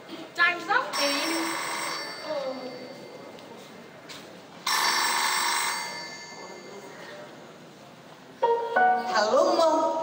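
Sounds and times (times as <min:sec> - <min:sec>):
telephone ringing: 0:01.0 - 0:02.3, 0:04.7 - 0:06.3.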